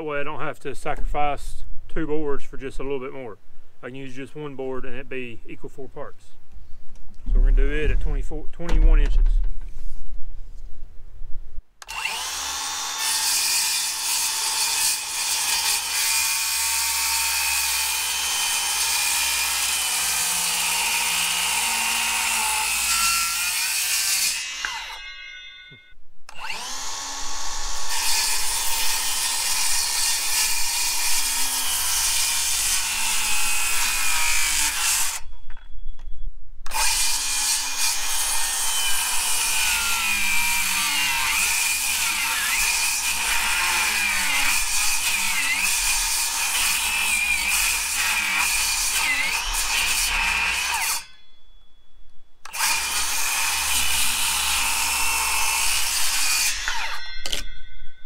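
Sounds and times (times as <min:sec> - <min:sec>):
circular saw cutting wood: 0:11.8 - 0:25.4, 0:26.3 - 0:35.2, 0:36.7 - 0:51.1, 0:52.5 - 0:57.4.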